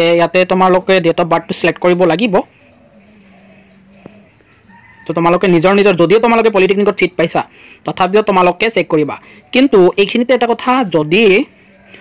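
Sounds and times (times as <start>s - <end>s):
fowl chirping: 0.0s - 7.8s, 8.4s - 12.0s.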